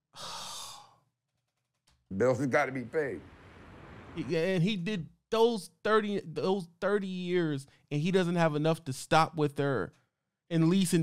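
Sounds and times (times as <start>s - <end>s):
man sighing: 0.1s - 1.0s.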